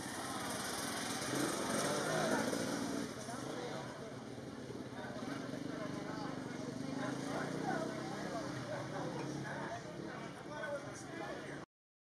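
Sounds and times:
motorcycle engines running: 0.0s - 11.5s.

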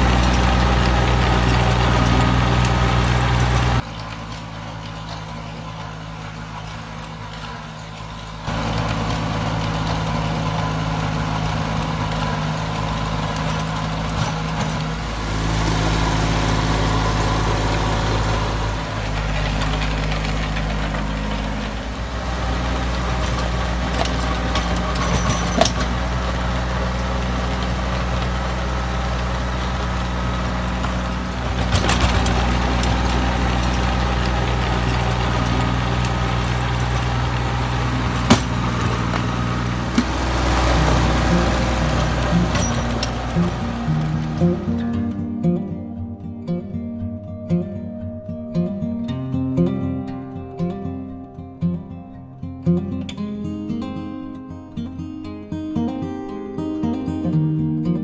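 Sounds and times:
rotary tiller through soil: 0.0s - 45.6s
tractor engine running: 0.0s - 48.2s.

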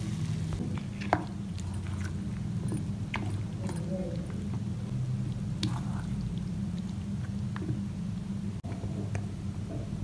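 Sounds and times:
spoon stirring thick pickle: 0.0s - 7.9s
low steady rumble: 0.0s - 10.0s.

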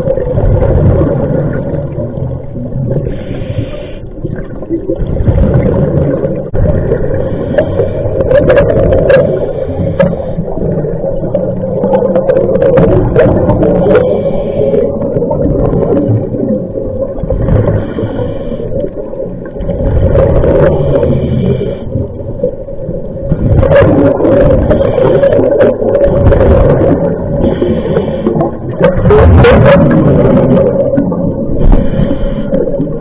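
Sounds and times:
exhaled air bubbling: 0.0s - 33.0s.

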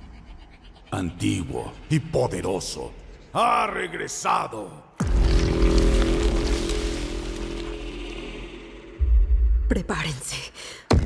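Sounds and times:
deep boom: 5.0s - 9.9s
dark drone: 5.0s - 10.0s.

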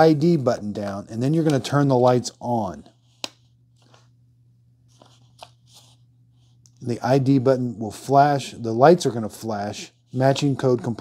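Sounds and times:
steady low hum: 0.0s - 11.0s
paper sheet rustling: 4.9s - 6.0s.

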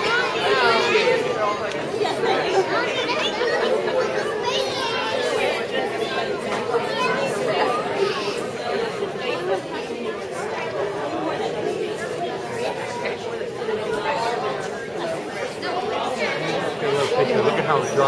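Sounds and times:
crowd chatter in a hall: 0.0s - 18.0s.

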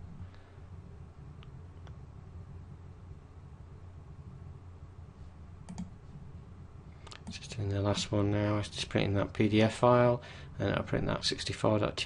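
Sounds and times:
low steady hum: 0.0s - 12.0s
faint clicks: 5.6s - 6.0s.

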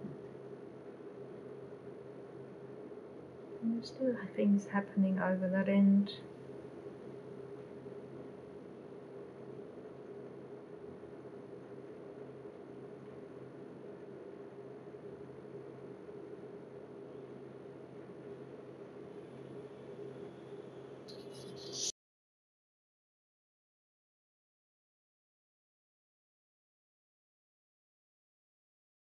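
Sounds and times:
constant low hum: 0.0s - 21.9s
faint hiss: 19.2s - 21.9s.

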